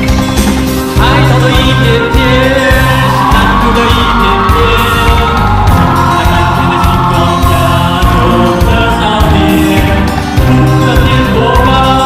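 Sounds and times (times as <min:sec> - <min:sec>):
pop backing track: 0:00.0 - 0:12.0
choir-like backing vocals: 0:01.0 - 0:12.0
man singing into a microphone: 0:01.0 - 0:12.0.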